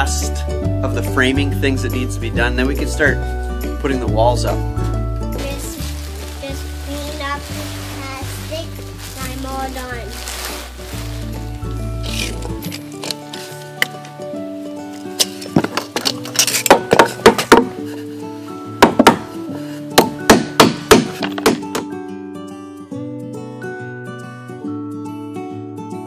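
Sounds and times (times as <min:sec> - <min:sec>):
background music: 0:00.0 - 0:26.0.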